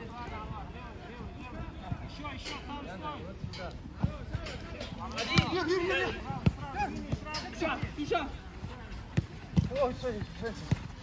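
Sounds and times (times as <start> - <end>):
players shouting: 4.0 - 8.5
football kick thuds: 5.3 - 8.1, 9.1 - 11.0.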